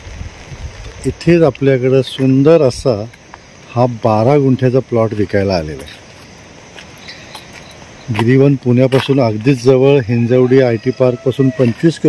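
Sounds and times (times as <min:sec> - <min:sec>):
crickets chirring: 0:00.0 - 0:12.0
man speaking: 0:01.0 - 0:03.1, 0:03.7 - 0:06.1, 0:08.1 - 0:12.0.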